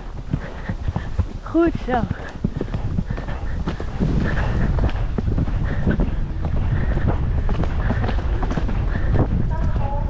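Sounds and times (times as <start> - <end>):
horse hoofbeats on dirt: 0.0 - 10.0.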